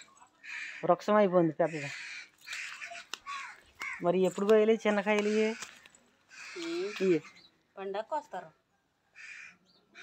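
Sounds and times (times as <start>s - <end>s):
crow cawing: 0.4s - 7.4s, 9.1s - 10.0s.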